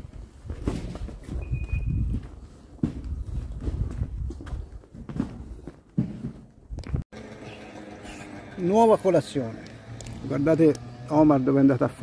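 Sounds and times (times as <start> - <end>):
footsteps of people walking: 0.0 - 7.0.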